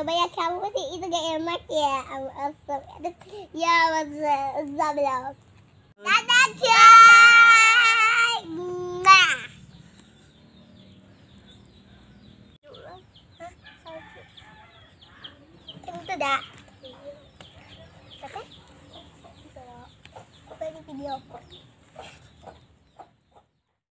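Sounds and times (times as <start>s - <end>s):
chickens clucking: 11.2s - 23.5s.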